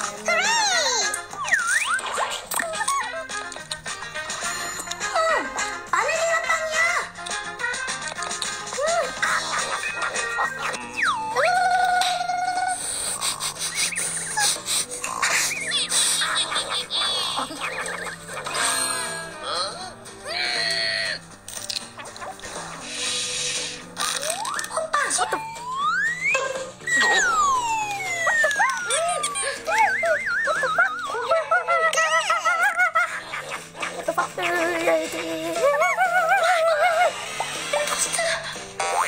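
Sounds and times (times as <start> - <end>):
background music: 0.0 - 39.0
background tune: 13.4 - 32.4
cartoon rising whistle: 25.4 - 28.9
held whistle-like tone: 29.7 - 31.0.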